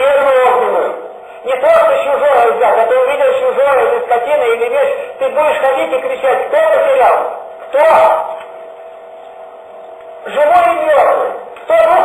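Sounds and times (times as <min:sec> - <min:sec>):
man speaking: 0:00.0 - 0:08.4, 0:10.2 - 0:12.0.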